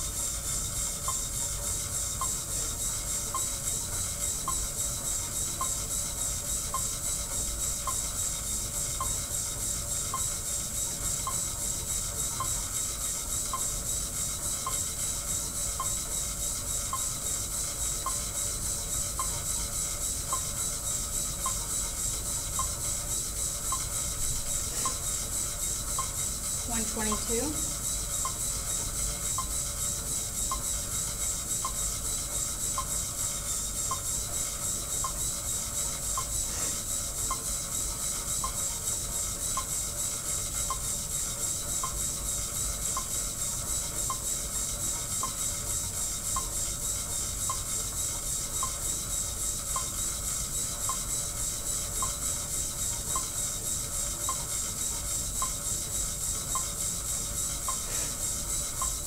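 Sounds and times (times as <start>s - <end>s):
exercise bike brake belt rasping: 0.0s - 59.0s
faint ticking: 0.2s - 59.0s.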